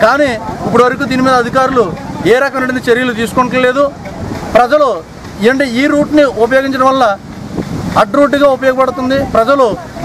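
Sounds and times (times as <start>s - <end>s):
man talking: 0.0s - 7.3s, 7.9s - 10.0s.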